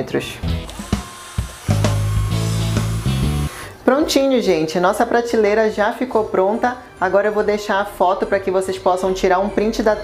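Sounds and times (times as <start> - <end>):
guitar music: 0.4 - 3.8
cordless drill driving screw: 0.6 - 3.8.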